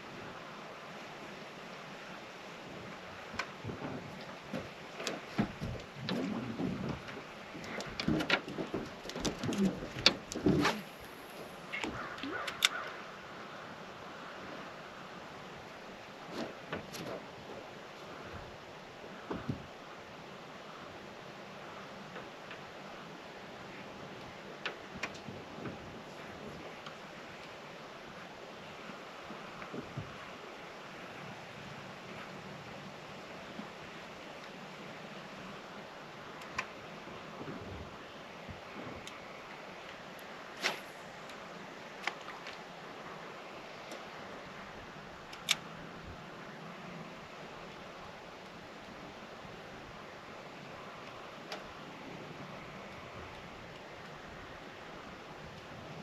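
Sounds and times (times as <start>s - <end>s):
faint boat ambience hiss: 0.0s - 56.0s.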